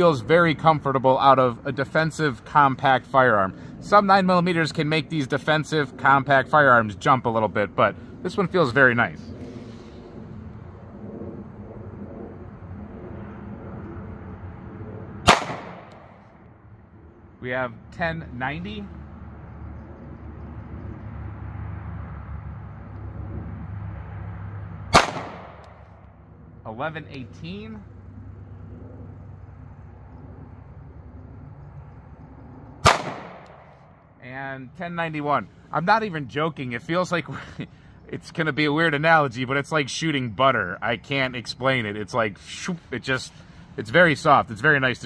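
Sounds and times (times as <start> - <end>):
faint background rumble: 0.0 - 45.0
pistol shot with echo: 15.2 - 16.2, 24.9 - 25.8, 32.8 - 33.7.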